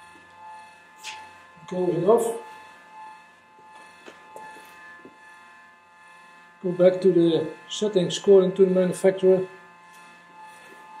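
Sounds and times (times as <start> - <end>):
welder electrical whine: 0.0 - 11.0.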